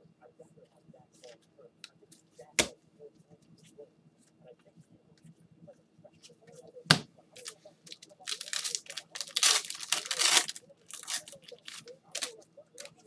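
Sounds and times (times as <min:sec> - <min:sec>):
wrapper tearing and crinkling: 0:07.4 - 0:12.9.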